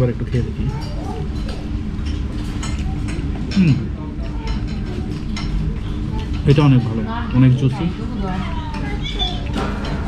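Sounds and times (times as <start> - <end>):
room chatter: 0.0 - 10.0
young child's high voice: 0.7 - 1.7, 8.4 - 9.7.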